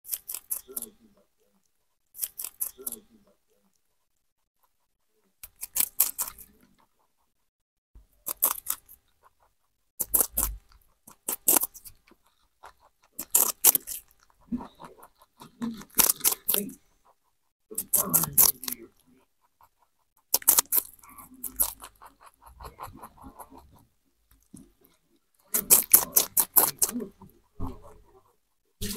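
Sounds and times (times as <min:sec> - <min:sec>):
rabbit crunching fruit: 0:00.0 - 0:07.3, 0:08.0 - 0:28.9.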